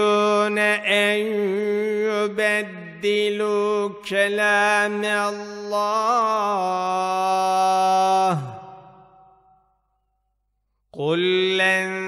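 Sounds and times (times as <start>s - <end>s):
person reciting slowly: 0.0s - 9.3s, 10.8s - 12.0s.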